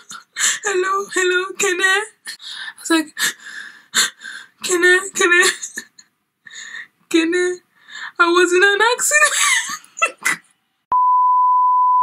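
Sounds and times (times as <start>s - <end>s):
television test tone beep: 10.9s - 12.0s.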